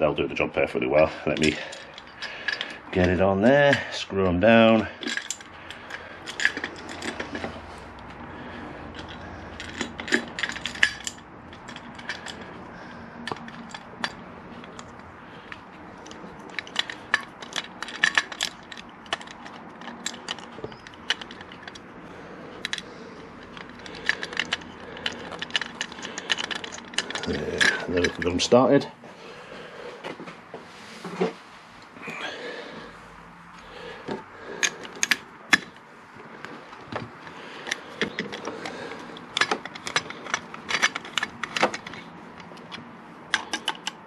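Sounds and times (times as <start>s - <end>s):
small metallic clicks and taps: 36.4s - 44.0s.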